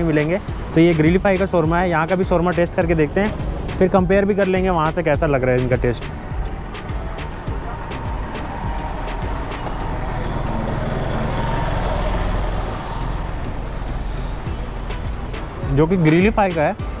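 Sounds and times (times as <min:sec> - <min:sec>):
quiet background music: 0:00.0 - 0:17.0
street traffic rumble: 0:00.0 - 0:17.0.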